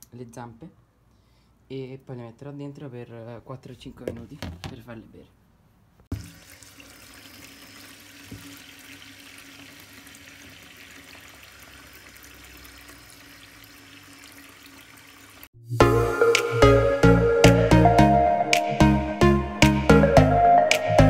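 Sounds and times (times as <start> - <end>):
water running into plastic tub: 6.1 - 15.5
electronic music with a beat: 15.8 - 21.0.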